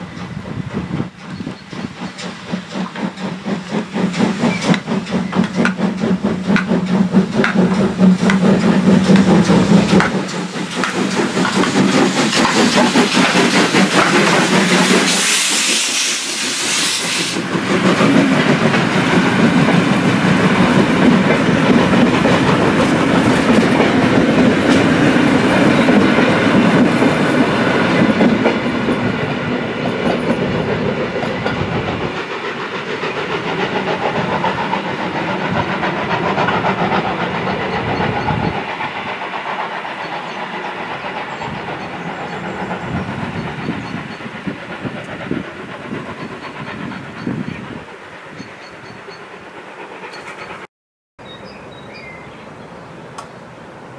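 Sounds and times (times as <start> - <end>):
steam train rolling past: 0.0 - 53.9
wheels clacking over rail joints: 1.0 - 15.2, 17.4 - 47.7.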